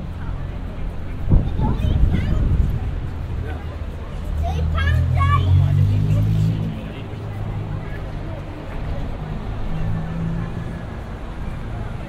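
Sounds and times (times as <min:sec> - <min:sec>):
passers-by talking: 0:00.0 - 0:12.0
steady traffic noise: 0:00.0 - 0:12.0
vehicle engine humming: 0:00.0 - 0:12.0.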